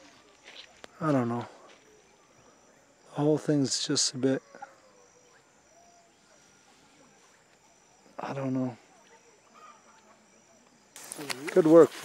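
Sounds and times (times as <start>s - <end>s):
high-pitched insect trill: 0.0s - 12.0s.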